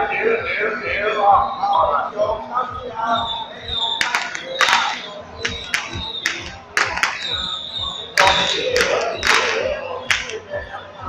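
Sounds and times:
crowd voices: 0.0s - 11.0s
street noise: 0.0s - 11.0s
sharp cracks and crashes: 4.0s - 7.4s, 8.2s - 10.4s.

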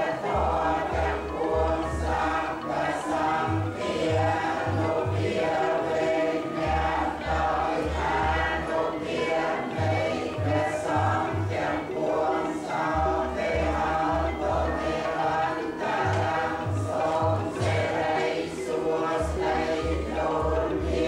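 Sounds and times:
voices chanting together: 0.0s - 21.0s.

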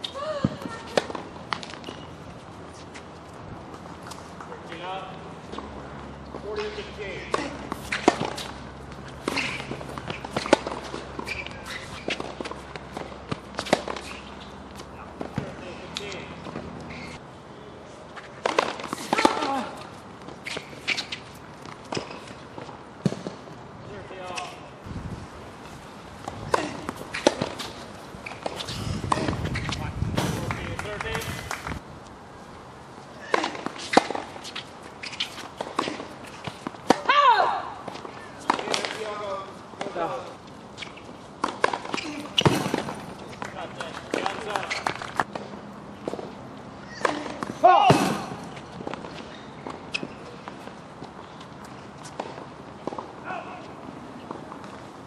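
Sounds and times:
tennis ball struck by racket: 6.6s - 14.4s, 26.2s - 31.5s, 41.4s - 43.2s
ball bouncing on hard court: 41.4s - 45.3s.

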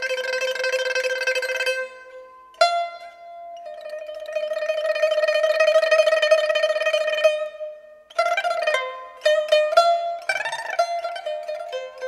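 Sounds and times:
pipa tremolo plucking: 0.0s - 12.0s.

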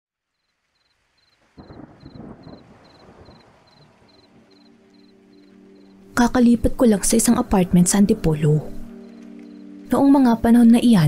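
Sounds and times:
crickets chirping: 0.3s - 6.5s, 8.6s - 10.2s
thunder rumble: 1.4s - 8.0s.

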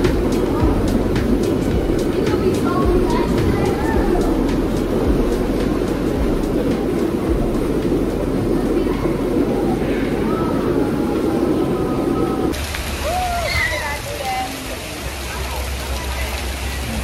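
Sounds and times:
faint children's voices: 0.0s - 17.0s
hot tub jets churning water: 0.0s - 17.0s.

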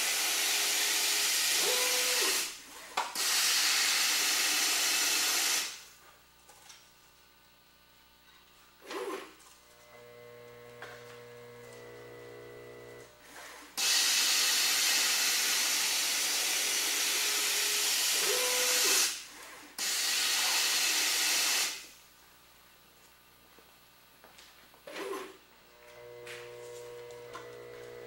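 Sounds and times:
powder dispensing hiss: 3.2s - 5.8s
motor hum: 8.8s - 13.8s, 24.9s - 28.0s.

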